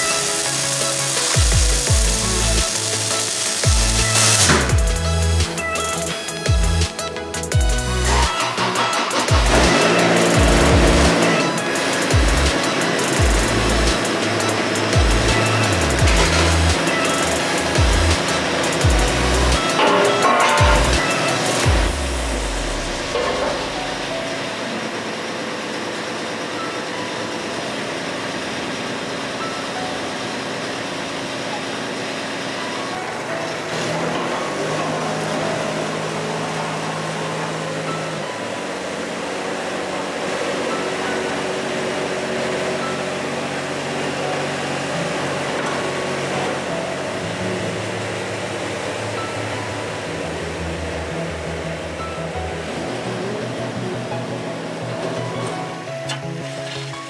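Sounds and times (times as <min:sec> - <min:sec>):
music with heavy bass: 0:00.0 - 0:24.4, 0:40.1 - 0:57.0
excavator diesel engine running: 0:00.0 - 0:57.0
steady low note: 0:09.3 - 0:11.6.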